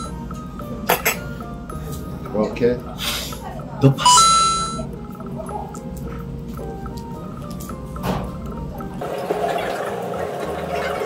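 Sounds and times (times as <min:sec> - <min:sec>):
two-note bright chime: 0:00.0 - 0:00.4.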